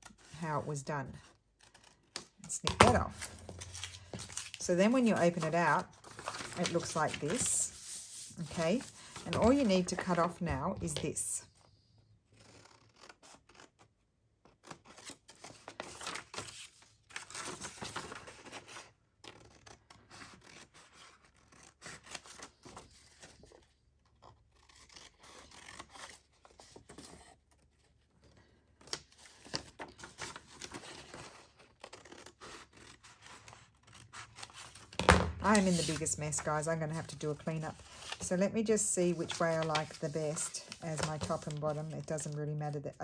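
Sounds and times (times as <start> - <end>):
paper rustling: 1.6 - 11.2, 28.8 - 42.4.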